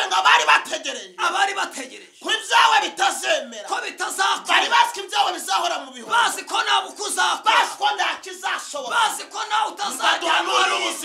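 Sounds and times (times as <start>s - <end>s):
man talking excitedly: 0.0s - 11.0s.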